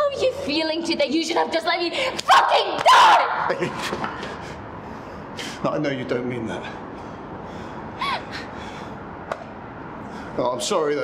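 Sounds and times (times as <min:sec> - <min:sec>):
faint breath: 0:06.8 - 0:09.1.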